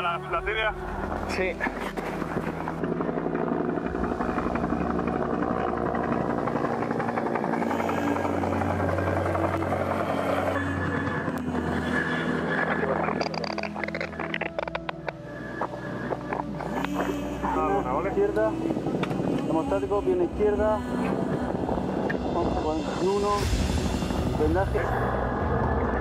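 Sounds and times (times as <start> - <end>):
steady engine drone: 0.0 - 26.0.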